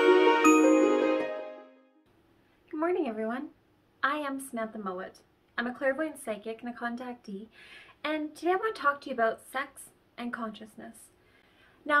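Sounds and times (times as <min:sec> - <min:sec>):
chime ringing: 0:00.0 - 0:01.8
held music tones: 0:00.0 - 0:01.8.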